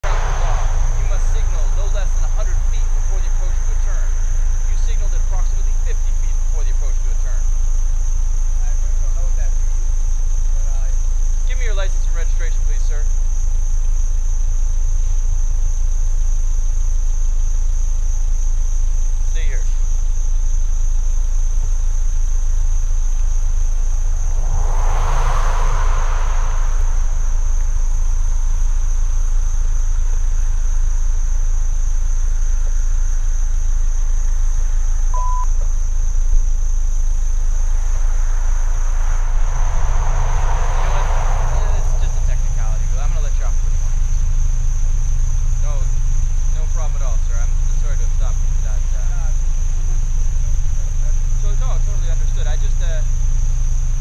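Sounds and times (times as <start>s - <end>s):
cars passing: 0.0s - 8.5s, 22.4s - 31.6s, 36.1s - 53.9s
car engine idling: 0.0s - 54.0s
constant high-pitched tone: 0.0s - 54.0s
short electronic beep: 35.1s - 35.6s.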